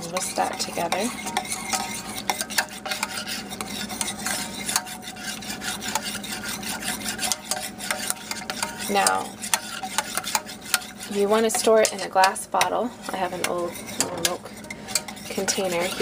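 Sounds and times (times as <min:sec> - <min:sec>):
frothing liquid sloshing: 0:00.0 - 0:16.0
whisk clicking against pan: 0:00.0 - 0:16.0.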